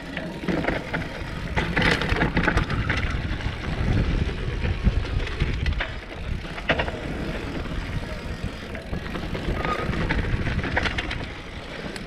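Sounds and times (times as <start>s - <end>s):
bike rattling and clicking: 0.0s - 12.0s
tyres rumbling on dirt: 0.0s - 12.0s
wind on microphone: 1.5s - 11.3s.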